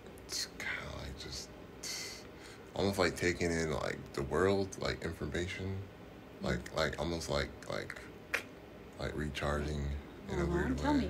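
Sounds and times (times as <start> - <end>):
man half-whispering: 0.3 - 2.2
breaths: 1.9 - 2.7.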